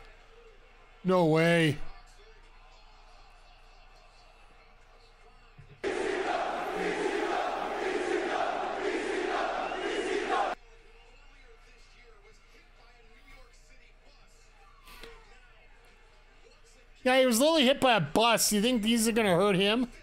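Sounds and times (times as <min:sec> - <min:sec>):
crowd chanting: 0:05.8 - 0:10.6.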